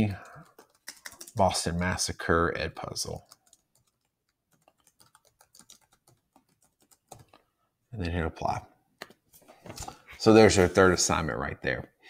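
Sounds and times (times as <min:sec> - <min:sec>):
faint keyboard typing: 0:00.0 - 0:01.7, 0:02.8 - 0:07.5.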